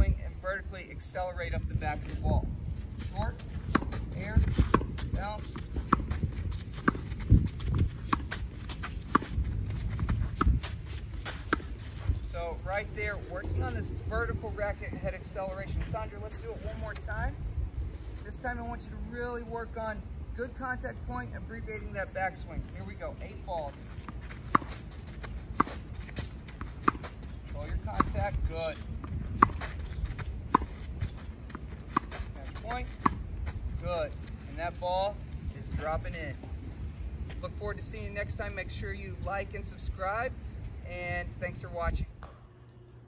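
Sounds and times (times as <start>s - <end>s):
tennis balls bouncing on court: 3.0s - 12.2s, 21.6s - 34.8s
racquet hitting tennis balls: 3.1s - 12.2s, 21.6s - 36.6s.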